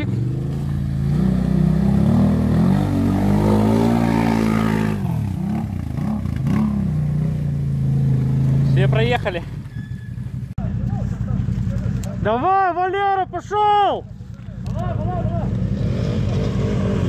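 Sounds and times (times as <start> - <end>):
atv engine revving: 0.0 - 12.5, 14.3 - 17.0.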